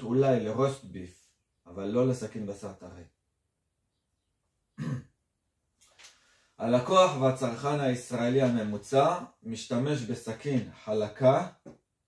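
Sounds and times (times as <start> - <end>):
man clearing throat: 4.8 - 5.2
faint breath: 6.0 - 6.6.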